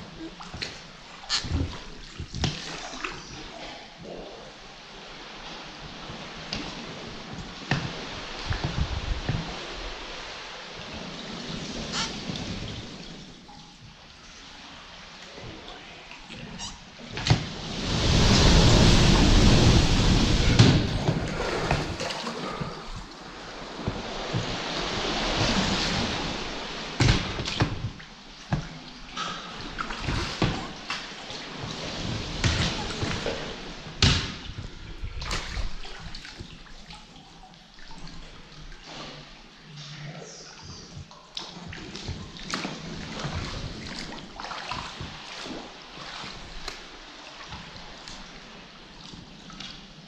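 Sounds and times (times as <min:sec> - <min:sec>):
seawater sloshing and lapping: 0:00.0 - 0:50.0
water drips and splashes: 0:00.0 - 0:50.0.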